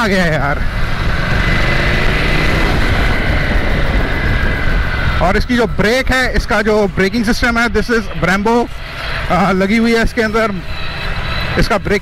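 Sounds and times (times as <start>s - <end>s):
faint high whine: 0.0s - 12.0s
wind and road noise: 0.0s - 12.0s
motorcycle engine running: 0.2s - 8.0s.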